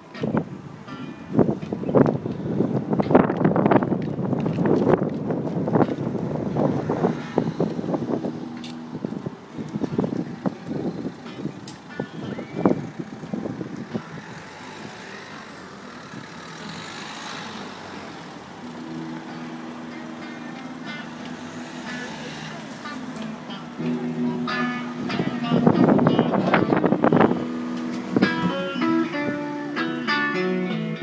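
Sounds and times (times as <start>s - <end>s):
wind gusts on microphone: 0.0s - 20.2s, 23.2s - 29.8s
traffic passing hiss: 0.0s - 31.0s.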